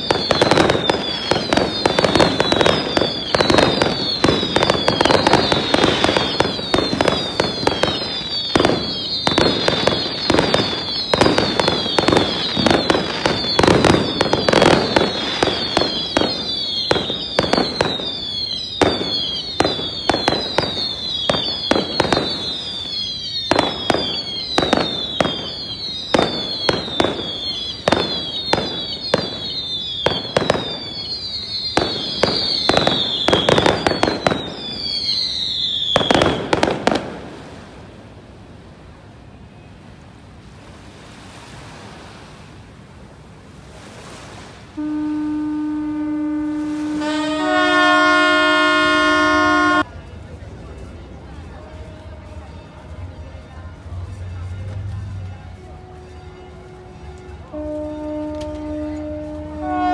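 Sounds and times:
fireworks whistles falling in pitch: 0.0 - 37.9, 44.6 - 49.9, 57.4 - 59.9
fireworks bangs: 0.0 - 39.0, 44.7 - 49.9, 57.5 - 59.9.

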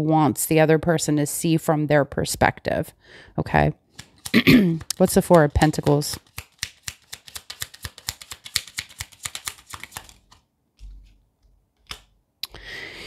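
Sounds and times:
cards being shuffled: 3.9 - 12.2.

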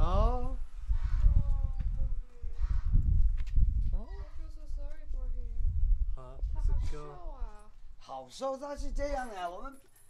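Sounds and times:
dog chain clinking: 9.1 - 10.0.

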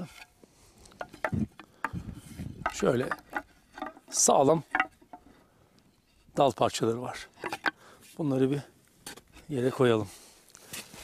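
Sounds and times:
wooden sticks knocking together: 0.9 - 5.4, 7.4 - 7.8.

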